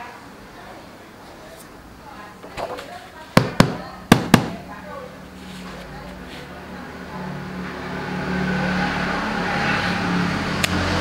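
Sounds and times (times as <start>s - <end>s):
rubber stamp knocking on table: 3.4s - 4.6s.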